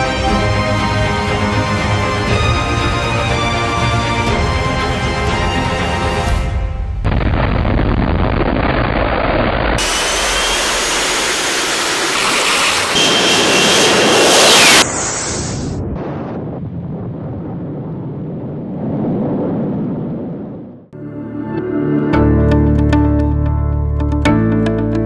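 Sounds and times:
jet engine roaring with high whine: 9.6 - 16.0
distant jet climbing away: 9.8 - 16.4.

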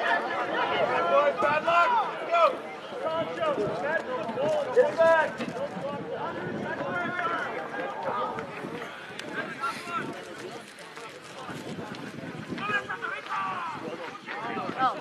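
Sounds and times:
players shouting: 12.6 - 14.4.

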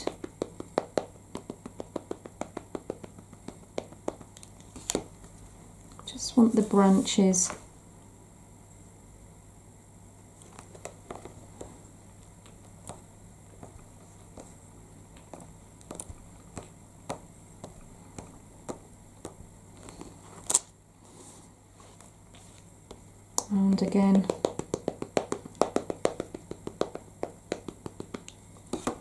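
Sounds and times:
stamp block tapping on card: 0.0 - 5.0, 23.7 - 29.0
low steady hum: 0.0 - 29.0.

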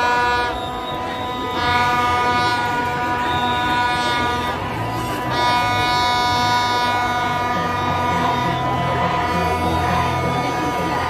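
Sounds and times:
crowd celebrating: 0.0 - 11.0
horn blasts: 0.0 - 11.0.

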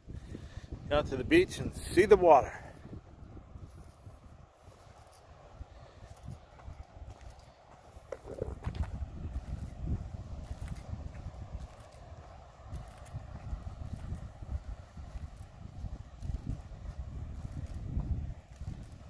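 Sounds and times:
footsteps on sandy path: 0.0 - 19.0
wind rumble on microphone: 0.0 - 19.0.

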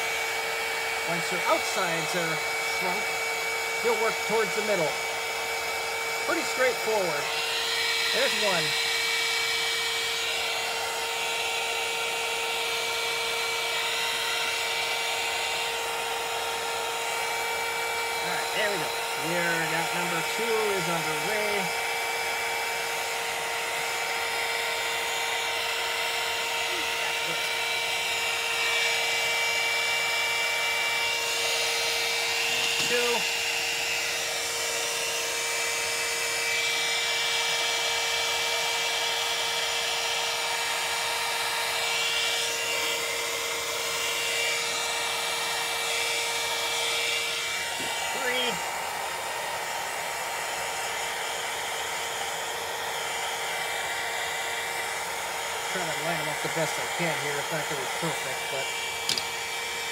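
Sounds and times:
heat gun fan whining: 0.0 - 59.9.

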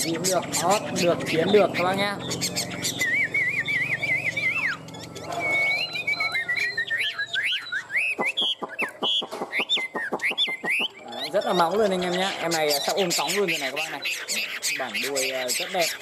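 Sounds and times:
bird singing in whistles: 0.0 - 16.0.

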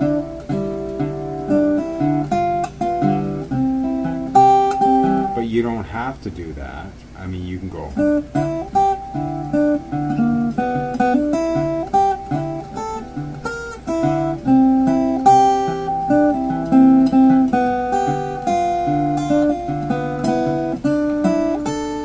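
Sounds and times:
fingerpicked blues guitar: 0.0 - 22.0.

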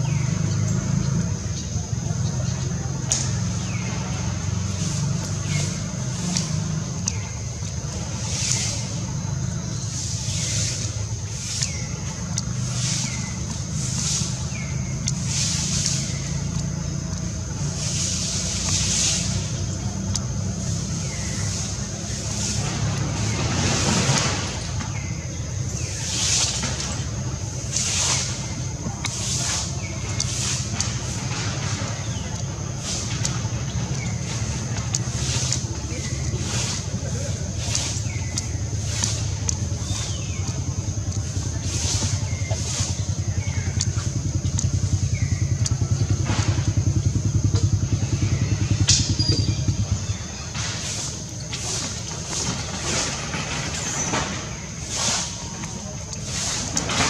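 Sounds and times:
low engine-like rumble: 0.0 - 57.0.

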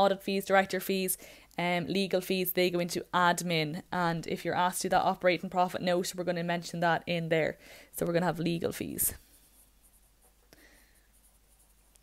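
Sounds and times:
pencil scratching on paper: 8.3 - 12.0.

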